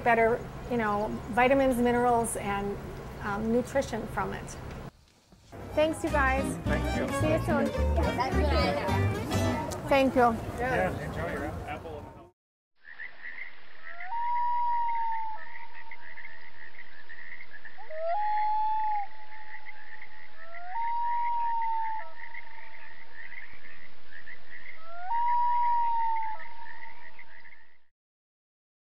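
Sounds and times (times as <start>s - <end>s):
long rising calls: 13.2s - 27.6s.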